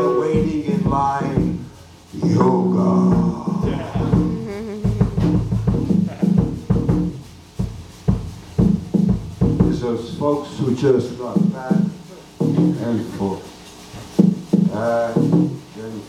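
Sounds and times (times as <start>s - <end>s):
upright bass notes: 0.0s - 13.2s, 14.2s - 15.7s
drum kit hits: 0.0s - 13.4s, 14.0s - 15.7s.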